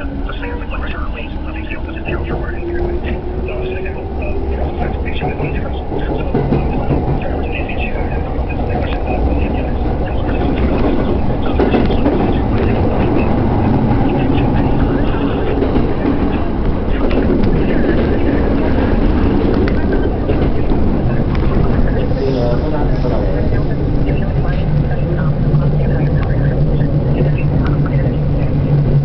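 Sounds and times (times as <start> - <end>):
electric train running: 0.0 - 29.0.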